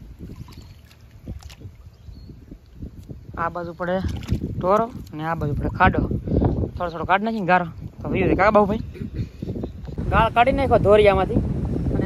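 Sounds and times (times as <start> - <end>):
water sloshing and splashing: 0.0 - 5.9.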